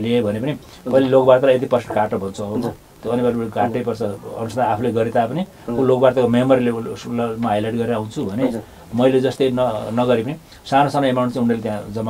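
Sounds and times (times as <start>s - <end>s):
man talking: 0.0s - 12.0s.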